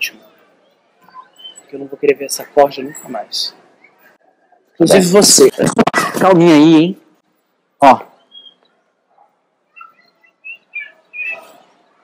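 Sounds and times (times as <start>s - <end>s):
birds chirping: 0.0s - 4.8s, 7.2s - 12.0s.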